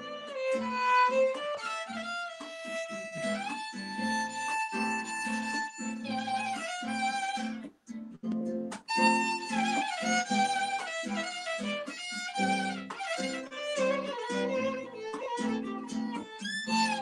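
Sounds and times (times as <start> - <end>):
plucked acoustic guitar chords: 0.0 - 17.0
violin melody: 0.0 - 17.0.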